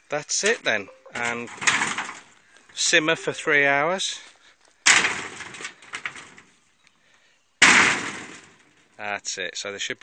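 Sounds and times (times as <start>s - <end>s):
stones clattering on metal roofing: 0.3s - 3.5s, 4.8s - 6.6s, 7.6s - 9.0s.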